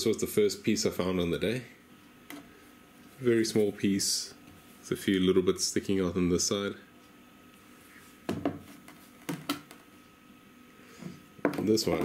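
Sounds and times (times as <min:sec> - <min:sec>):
stones knocking on a benchtop: 0:11.4 - 0:12.0.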